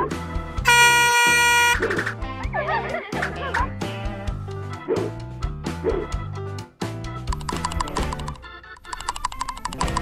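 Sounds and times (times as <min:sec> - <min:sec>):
background music with steady beat: 0:00.0 - 0:10.0
truck air horn blast: 0:00.6 - 0:02.0.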